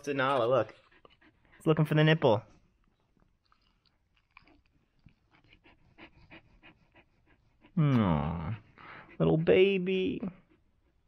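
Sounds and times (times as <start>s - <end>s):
dog panting: 0.0s - 3.2s, 4.8s - 11.0s.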